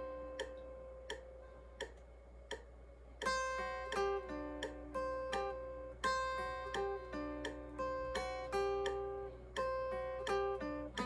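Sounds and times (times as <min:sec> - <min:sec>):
steady low hum: 0:00.0 - 0:11.0
electric guitar solo: 0:03.2 - 0:11.0.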